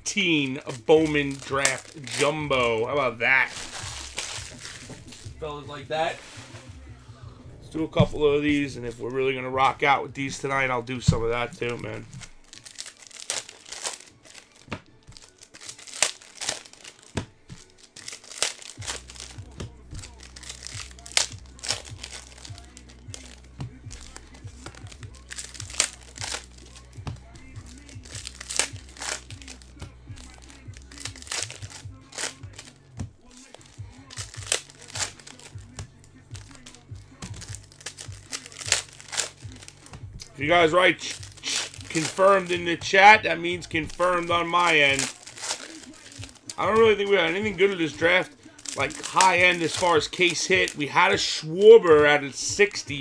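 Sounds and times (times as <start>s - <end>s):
foil wrappers tearing and crinkling: 0.0s - 5.4s, 8.9s - 53.0s.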